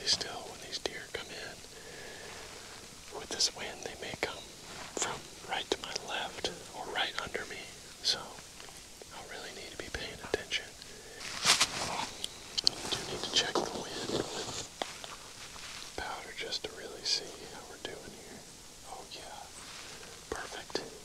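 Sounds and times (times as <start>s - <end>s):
man whispering: 0.0s - 15.1s, 16.0s - 21.0s.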